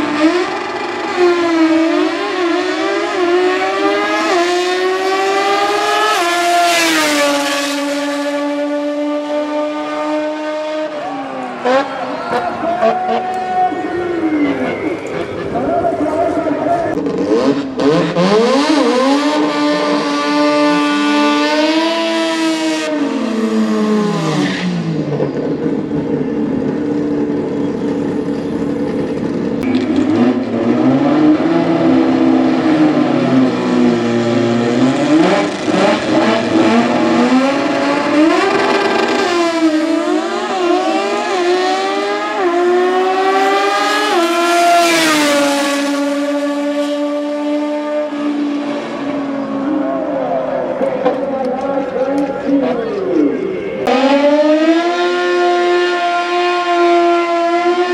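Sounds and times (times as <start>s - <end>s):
drag race engines revving: 0.0s - 57.9s
engines accelerating hard: 0.0s - 57.9s.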